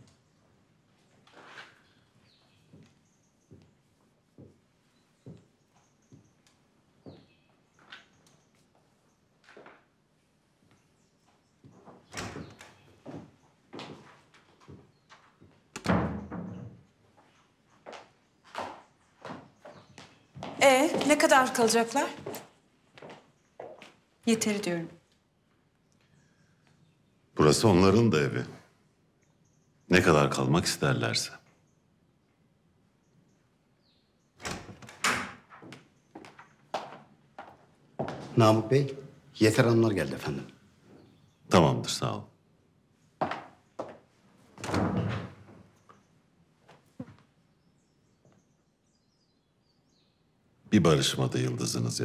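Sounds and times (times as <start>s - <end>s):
footsteps on hard floor: 4.4s - 4.6s, 13.0s - 15.6s, 17.2s - 24.0s, 35.6s - 38.4s, 43.2s - 44.1s
wooden door opening: 11.8s - 13.2s, 15.7s - 17.0s, 34.4s - 37.0s, 44.5s - 45.9s.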